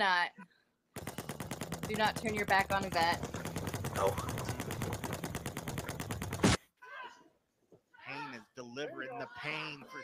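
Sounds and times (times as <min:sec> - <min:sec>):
rapid automatic gunfire: 0:01.0 - 0:06.6.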